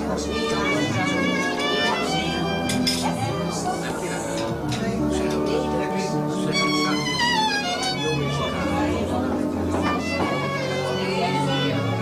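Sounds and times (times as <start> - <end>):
violin playing wavering notes: 6.4 - 12.0.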